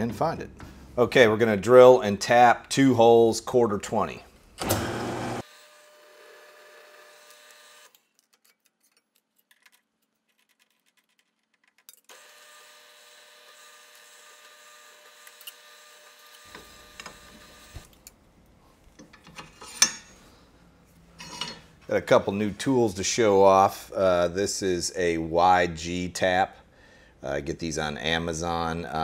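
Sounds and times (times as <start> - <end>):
drill press motor whining: 4.6 - 7.9, 12.1 - 17.9.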